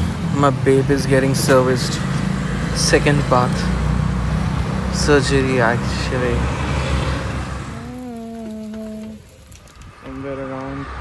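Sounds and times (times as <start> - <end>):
person humming one pitch: 7.7 - 9.2.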